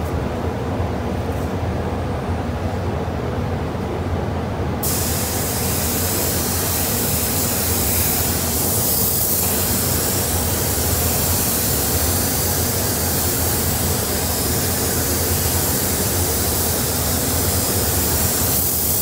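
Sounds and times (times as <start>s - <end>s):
ventilation hum: 0.0s - 19.0s
spray gun hissing: 4.8s - 19.0s.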